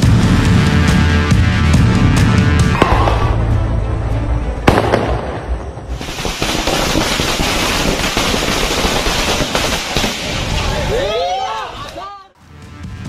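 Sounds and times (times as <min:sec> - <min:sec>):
firecrackers crackling: 0:02.7 - 0:03.5, 0:04.6 - 0:12.0
firecracker bang: 0:02.7 - 0:03.6, 0:04.7 - 0:10.8.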